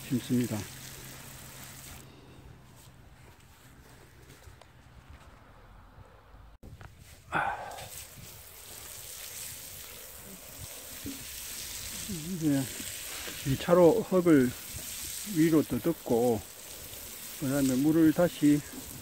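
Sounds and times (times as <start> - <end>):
hose spraying water on soil: 0.0 - 2.9, 7.0 - 19.0.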